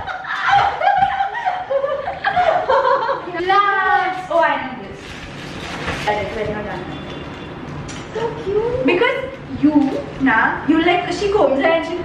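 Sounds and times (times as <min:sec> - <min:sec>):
women laughing: 0:00.0 - 0:03.5.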